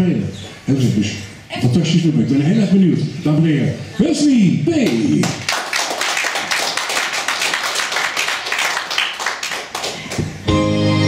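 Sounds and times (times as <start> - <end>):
audience applauding: 4.9 - 10.4
sustained instrumental chords: 10.5 - 11.0.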